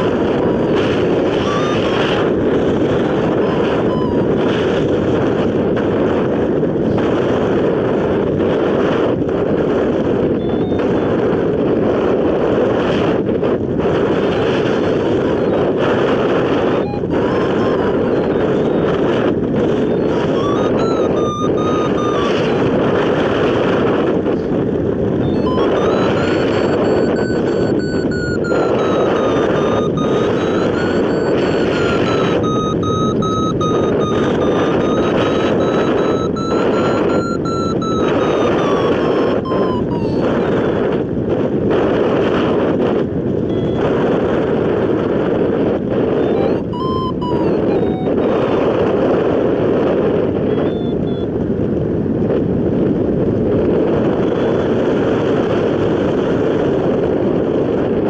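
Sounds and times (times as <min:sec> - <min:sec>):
wind rushing over microphone: 0:00.0 - 0:58.0
thin wavering tone: 0:00.5 - 0:02.2, 0:03.0 - 0:04.3, 0:16.8 - 0:18.9, 0:19.9 - 0:22.6, 0:25.2 - 0:40.4, 0:46.2 - 0:48.4.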